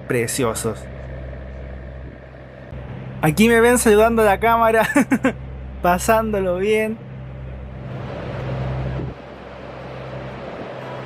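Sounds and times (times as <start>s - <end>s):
boat engines humming: 0.0s - 11.0s
wind: 0.0s - 11.0s
rushing wake water: 7.4s - 11.0s.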